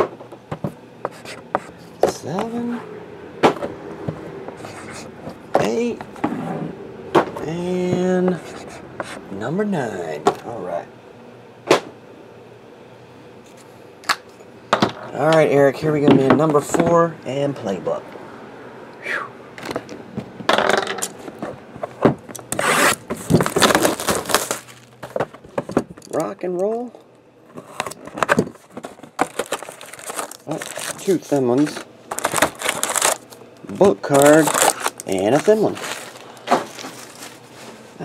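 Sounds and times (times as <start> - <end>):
box cutter slitting box: 22.5 - 24.6
plastic wrap crinkling: 23.1 - 25.1, 29.0 - 37.7.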